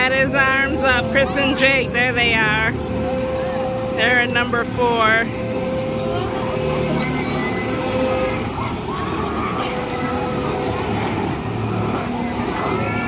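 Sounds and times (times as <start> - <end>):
amusement ride machinery hum: 0.0 - 13.0
crowd voices: 0.0 - 13.0.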